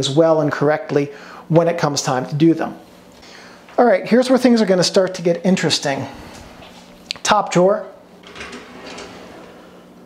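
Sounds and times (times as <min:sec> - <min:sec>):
drawer sliding open: 0:08.2 - 0:09.8.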